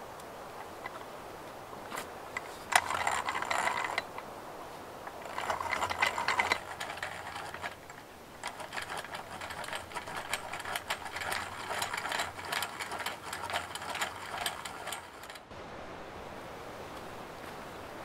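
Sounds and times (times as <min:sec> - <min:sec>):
gears rattling and clicking: 0:01.9 - 0:04.2, 0:05.1 - 0:15.5
hand-cranked drill boring wood: 0:02.4 - 0:04.2, 0:05.1 - 0:15.4.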